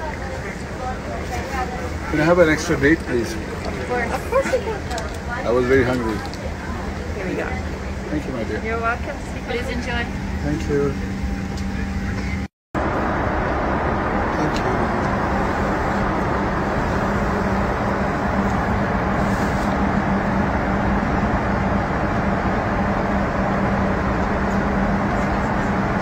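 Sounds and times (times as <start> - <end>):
airliner cabin engine rush: 0.0 - 26.0
constant low hum: 0.0 - 26.0.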